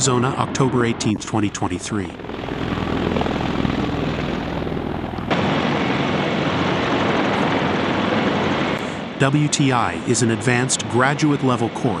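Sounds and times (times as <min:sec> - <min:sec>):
helicopter rotors and engines: 0:00.0 - 0:12.0.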